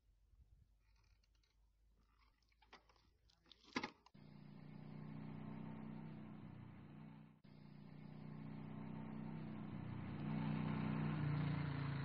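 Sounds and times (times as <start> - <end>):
motorcycle engine approaching: 4.2 - 12.0.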